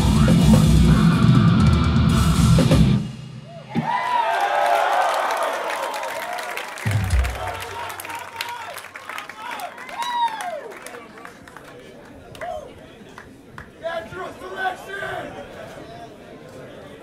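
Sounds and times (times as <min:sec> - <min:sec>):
death metal band playing: 0:00.0 - 0:03.5, 0:06.9 - 0:08.0
crowd cheering and yelling: 0:03.4 - 0:13.0
low thud from stage: 0:06.9 - 0:07.8.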